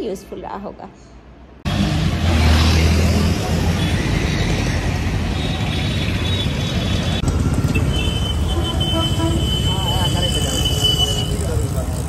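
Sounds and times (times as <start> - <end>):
city road traffic: 0.0 - 12.0.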